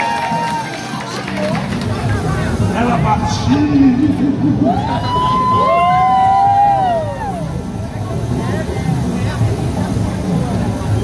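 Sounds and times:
crowd chatter: 0.0s - 11.0s
steady low rumble: 1.3s - 11.0s.

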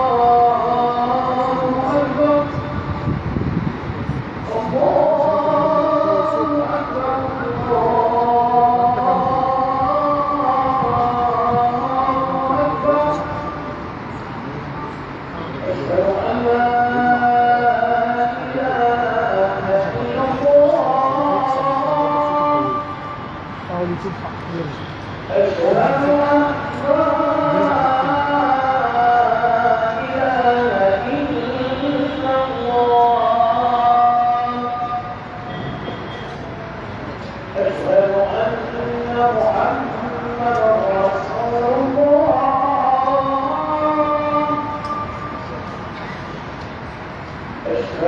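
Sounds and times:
man chanting recitation: 0.0s - 35.5s, 36.2s - 46.3s, 47.5s - 48.0s
background murmur: 0.0s - 48.0s
crowded hall rumble: 0.0s - 48.0s.

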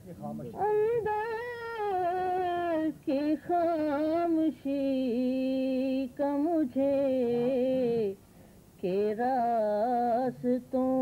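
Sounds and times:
woman chanting verse: 0.6s - 8.2s.

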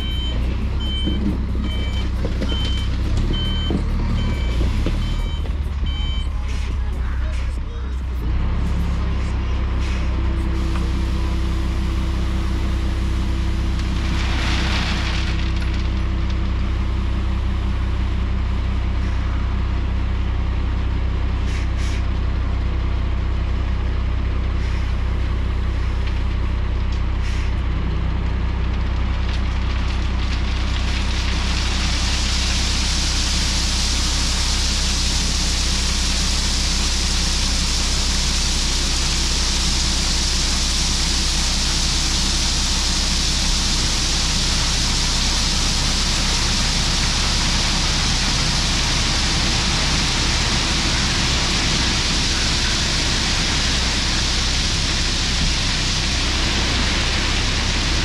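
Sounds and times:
truck diesel engine running: 0.0s - 58.0s
gravel load sliding out: 8.2s - 17.6s, 28.4s - 58.0s.

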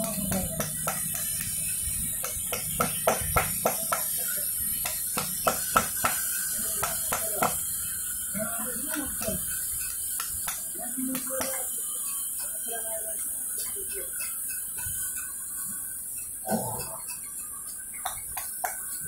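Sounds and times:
hammer striking chisel on stone: 0.0s - 12.6s, 17.1s - 19.0s.

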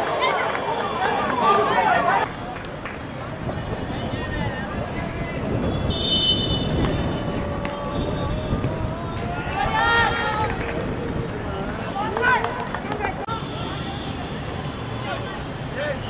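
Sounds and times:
players shouting: 0.0s - 2.5s, 8.6s - 10.8s
referee's whistle: 5.7s - 6.8s
rumble of ground noise: 6.8s - 13.2s.

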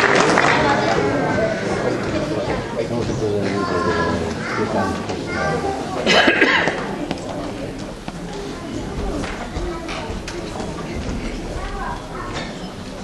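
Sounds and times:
people talking in a hall: 0.0s - 13.0s.

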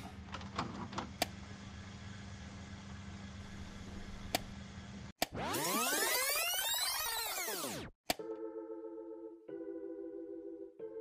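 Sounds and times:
tape rewind whirring: 0.3s - 8.0s.

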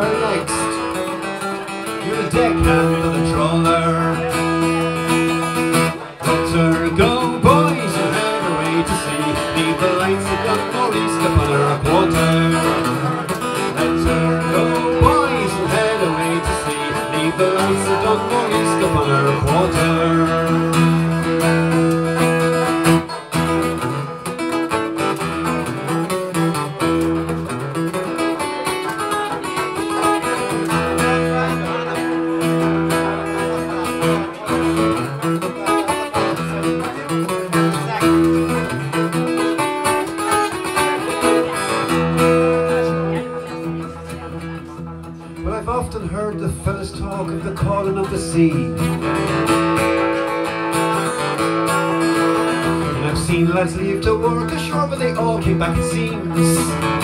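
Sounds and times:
acoustic guitar strummed chords: 0.0s - 57.0s.

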